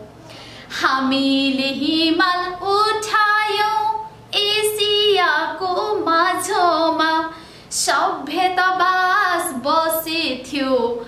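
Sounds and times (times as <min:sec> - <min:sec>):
singer breathing: 0:00.2 - 0:00.8, 0:07.3 - 0:07.8
woman singing unaccompanied: 0:00.7 - 0:11.0.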